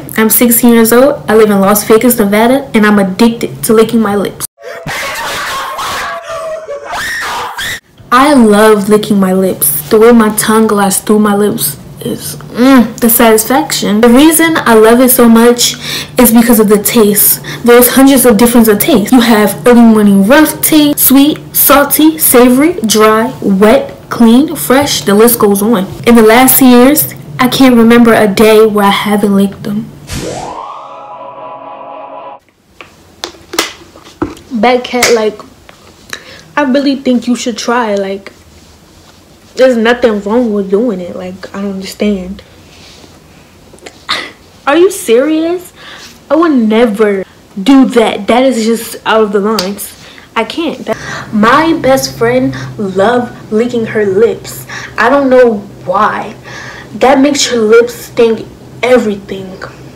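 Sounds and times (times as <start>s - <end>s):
person squealing: 4.6s - 7.8s
electronic rising sweep tone: 30.1s - 32.4s.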